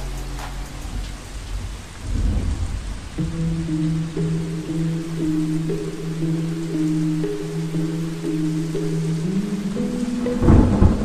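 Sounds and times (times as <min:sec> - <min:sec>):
low rolling thunder: 0:00.0 - 0:05.2, 0:10.3 - 0:11.0
steady rain: 0:00.0 - 0:11.0.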